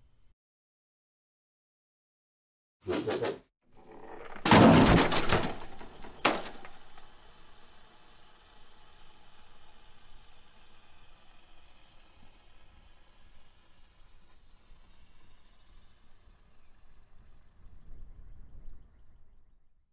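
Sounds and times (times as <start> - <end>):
loud crash: 4.0 - 6.8.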